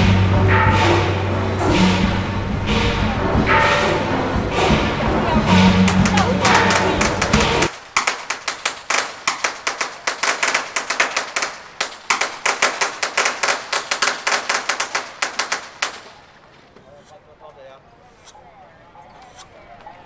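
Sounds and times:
loud music: 0.0s - 7.7s
firecrackers crackling: 5.6s - 17.2s.

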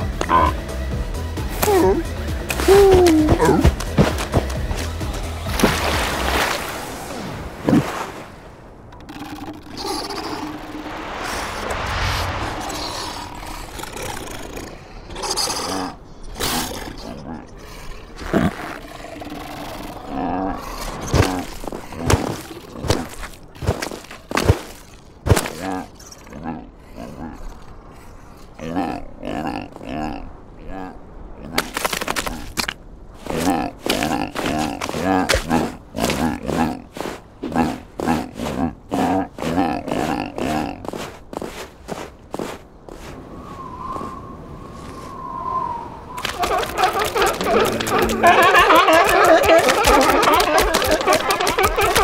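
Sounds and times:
cartoon seal grunts and cries: 1.5s - 3.8s, 33.2s - 40.9s, 46.3s - 52.0s
rushing noise: 9.6s - 15.2s
cartoon seal grunting: 46.3s - 52.0s.

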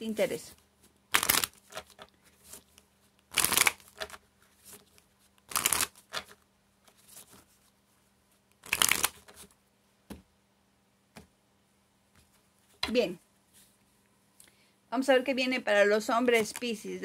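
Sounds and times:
playing cards shuffling: 0.4s - 7.8s, 8.4s - 9.6s, 16.2s - 16.8s
cards tapping: 1.1s - 2.1s, 3.3s - 4.2s, 5.4s - 6.4s, 8.6s - 9.5s.

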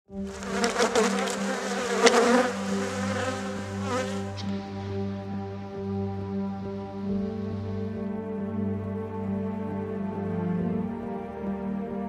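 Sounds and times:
honeybees buzzing: 0.2s - 5.0s.

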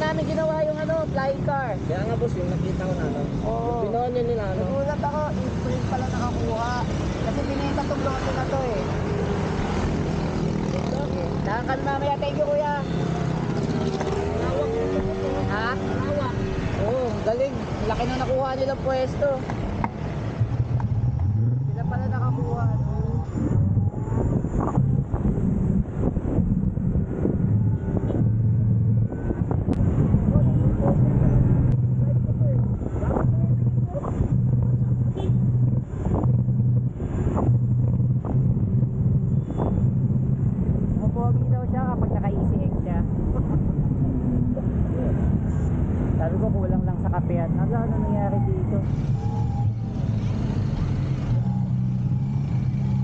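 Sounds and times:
traffic: 0.0s - 53.0s
wind on microphone: 19.6s - 53.0s.

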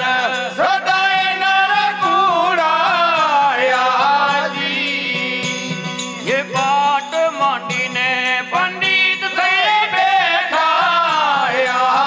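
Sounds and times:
jingling percussion: 0.0s - 12.0s.

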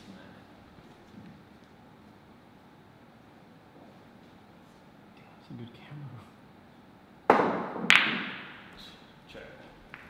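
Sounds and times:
billiard balls clacking: 7.3s - 8.8s
cue striking billiard ball: 7.3s - 8.8s.

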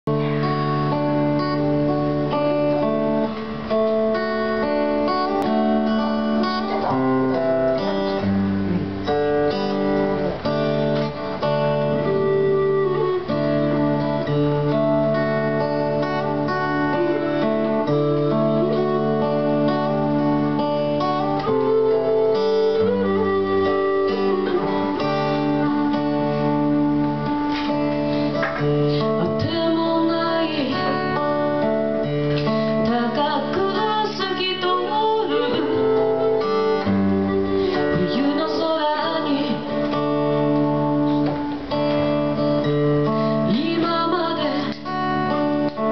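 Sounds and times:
electric guitar: 0.0s - 45.9s
strummed acoustic guitar: 0.1s - 45.9s
end-blown flute melody: 11.2s - 28.0s, 35.2s - 39.3s.

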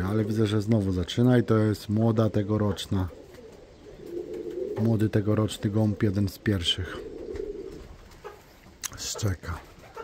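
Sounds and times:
pigeons cooing: 0.0s - 10.0s.

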